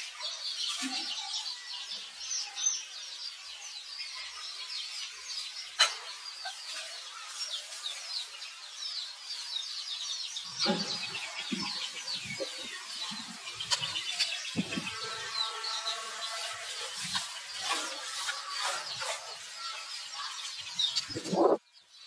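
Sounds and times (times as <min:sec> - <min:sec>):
high chirping animal calls: 0:09.3 - 0:22.0
rustling movement: 0:15.8 - 0:21.6.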